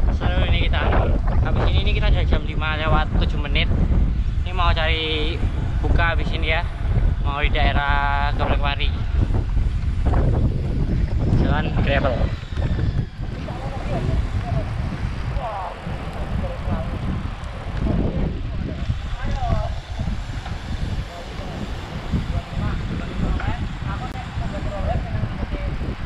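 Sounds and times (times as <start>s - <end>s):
bicycle tyre noise on pavement: 0.0s - 26.0s
wind rumbling on microphone: 0.0s - 26.0s.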